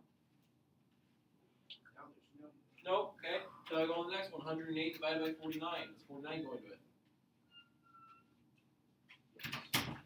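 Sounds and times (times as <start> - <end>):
faint whistle-like tone: 7.4 - 8.3.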